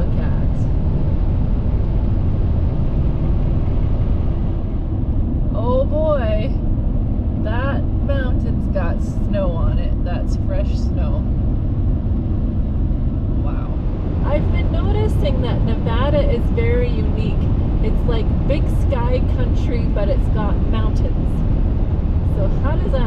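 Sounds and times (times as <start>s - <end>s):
tyre and engine rumble: 0.0s - 23.0s.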